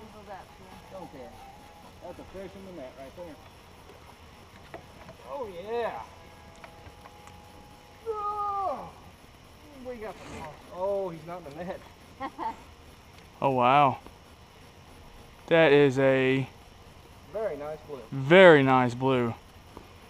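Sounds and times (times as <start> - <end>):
people calling out: 5.8 - 9.3.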